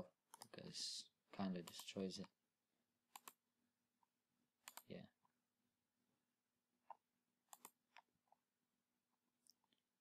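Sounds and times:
computer mouse clicks: 3.1 - 3.4, 4.6 - 5.0, 6.8 - 8.1.

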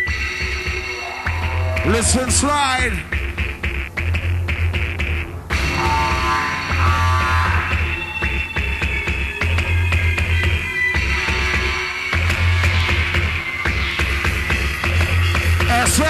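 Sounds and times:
drum and bass music: 0.0 - 16.0.

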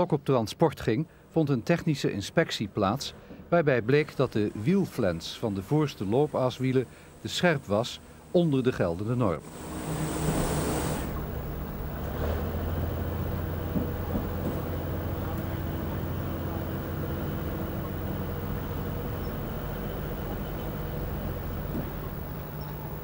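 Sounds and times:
engine idling: 3.0 - 23.0.

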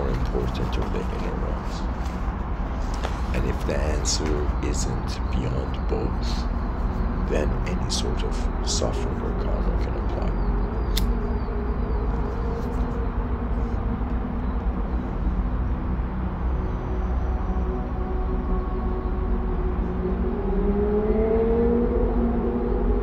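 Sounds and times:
low background rumble: 0.0 - 23.0.

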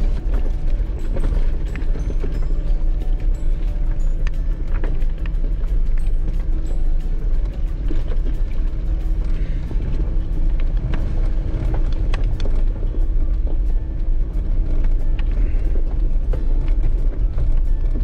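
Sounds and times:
low engine rumble: 0.0 - 18.0.

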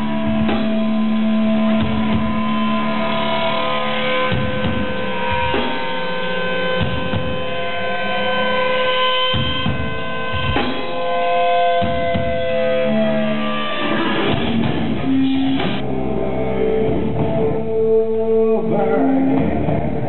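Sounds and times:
amp hum: 0.0 - 20.0
electric guitar feedback: 0.0 - 20.0.

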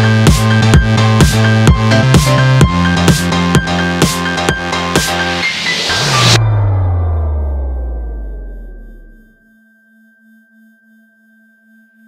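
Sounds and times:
low pulsing synth tone: 0.0 - 12.0.

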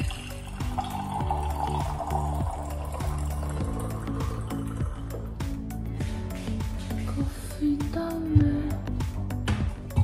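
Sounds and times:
water pouring from a kettle: 0.0 - 5.3
background music with a beat: 0.0 - 10.0.

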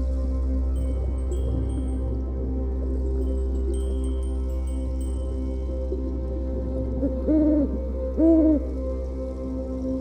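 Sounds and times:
ambient music drone: 0.0 - 10.0.

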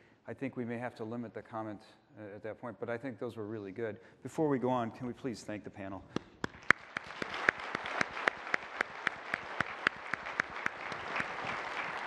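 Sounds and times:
nearby hands clapping steadily: 6.1 - 12.0
audience applauding: 6.4 - 12.0.

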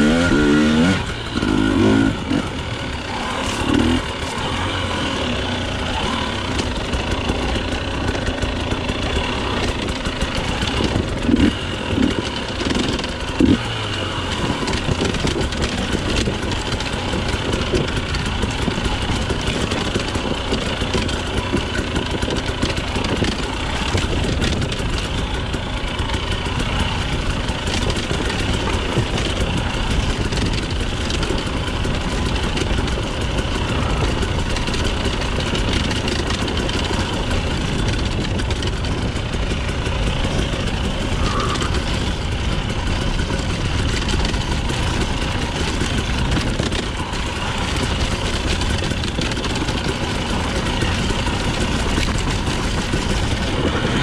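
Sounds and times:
motorcycle engine at low revs: 0.0 - 54.0.

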